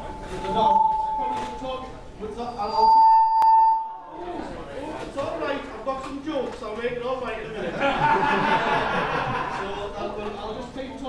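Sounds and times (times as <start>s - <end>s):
microphone feedback whistle: 0.0s - 4.1s.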